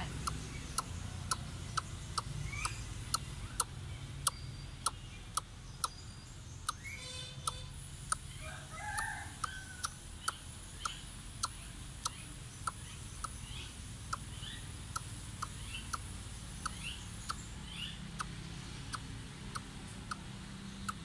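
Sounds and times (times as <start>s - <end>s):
sharp even ticking: 0.0s - 6.0s, 6.6s - 6.8s, 9.0s - 21.0s
bird calls: 0.0s - 21.0s
bird chirps: 0.0s - 21.0s.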